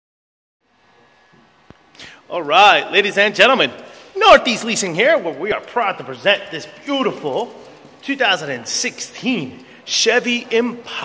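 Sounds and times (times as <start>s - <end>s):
faint room hiss: 0.6s - 11.0s.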